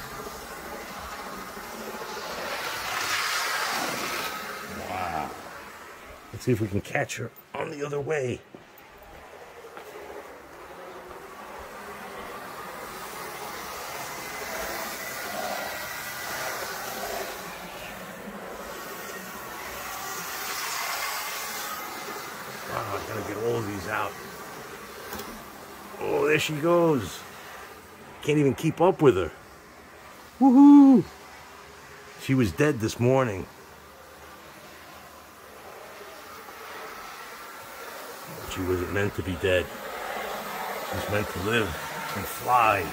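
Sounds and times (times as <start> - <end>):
model train motors whirring: 0.0 - 42.9
thin whine: 0.0 - 42.9
wheels on rails: 0.0 - 42.9.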